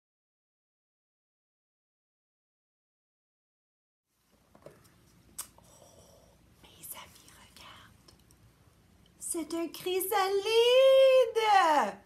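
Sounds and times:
woman whispering: 0:05.7 - 0:08.2.

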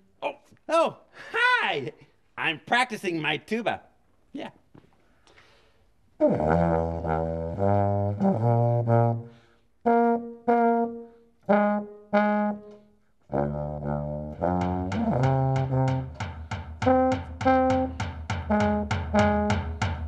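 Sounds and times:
tuba playing notes: 0:06.2 - 0:20.0
drum beating: 0:14.2 - 0:20.0.

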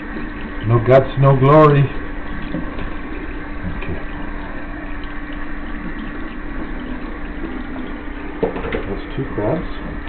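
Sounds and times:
steady low hum: 0:00.0 - 0:10.0
water splashing into a metal sink: 0:05.0 - 0:10.0.

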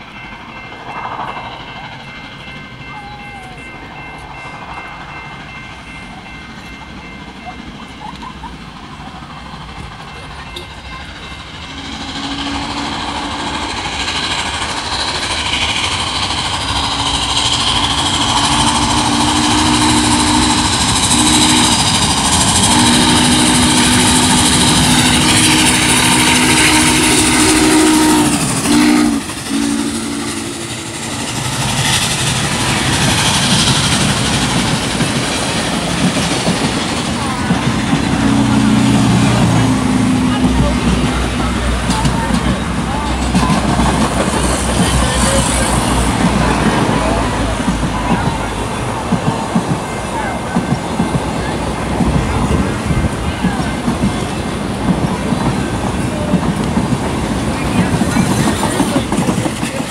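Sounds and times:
passenger cars rolling on rails: 0:00.0 - 0:59.9
train rumble: 0:00.0 - 0:59.9
steam whistle blasts: 0:11.7 - 0:13.8, 0:16.8 - 0:31.2, 0:38.0 - 0:39.3.

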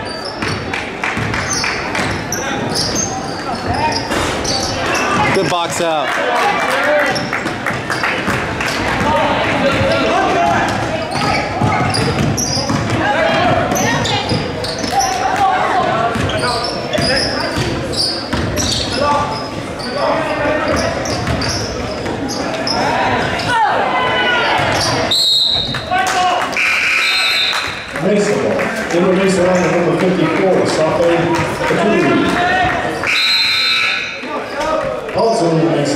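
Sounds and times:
voices of players and spectators: 0:00.0 - 0:35.9
basketball dribbling on hardwood: 0:10.5 - 0:13.0.

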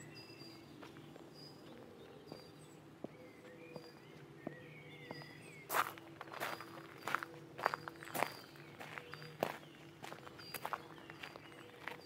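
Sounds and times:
footsteps on gravel: 0:00.7 - 0:12.0.

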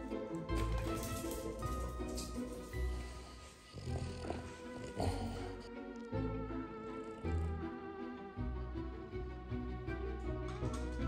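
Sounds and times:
background music: 0:00.0 - 0:11.0
dog sound: 0:02.2 - 0:05.8.

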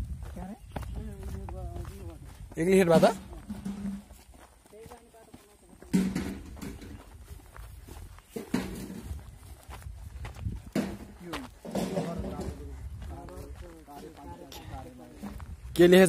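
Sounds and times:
footsteps on gravel: 0:00.0 - 0:16.0
people talking: 0:00.3 - 0:04.0, 0:04.7 - 0:06.4, 0:11.2 - 0:16.0.

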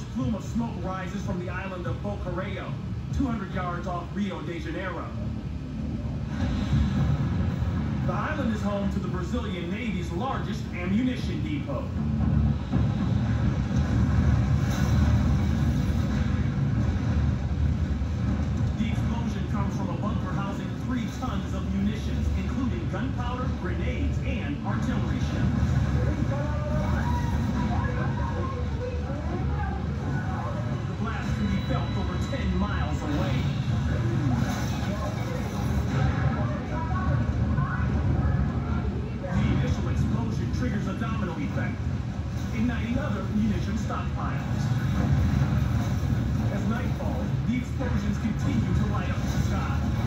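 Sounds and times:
low background rumble: 0:00.0 - 0:50.0.

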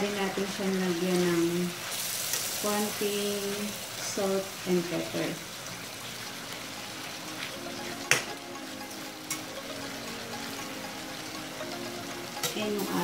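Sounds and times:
chicken sizzling in a pan: 0:00.0 - 0:13.0.

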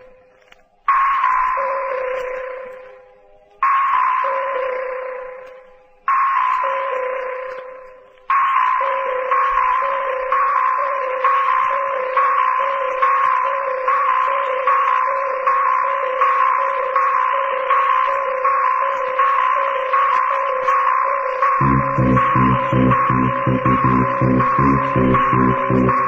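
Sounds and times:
deep fast-pulsing bass: 0:21.6 - 0:26.0
pulsing synth riff: 0:21.6 - 0:26.0.

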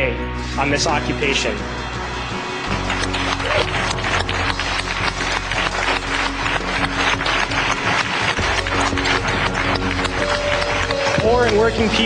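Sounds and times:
low music notes: 0:00.0 - 0:12.0
audience applauding: 0:00.8 - 0:12.0.

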